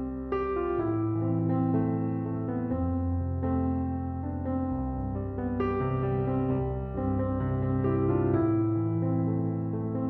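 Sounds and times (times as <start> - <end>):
slow piano music: 0.0 - 10.0.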